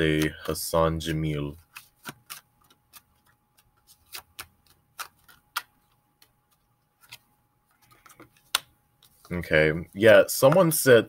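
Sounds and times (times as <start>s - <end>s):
cards shuffling and clicking: 0.0s - 9.4s.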